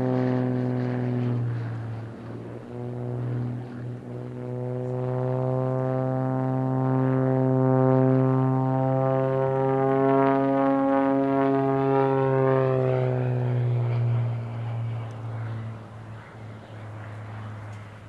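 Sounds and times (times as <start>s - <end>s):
propeller airplane droning: 0.0s - 18.0s.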